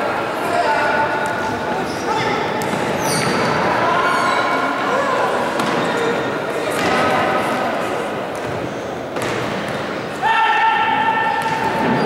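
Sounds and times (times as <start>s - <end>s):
echoing crowd voices: 0.0s - 12.0s.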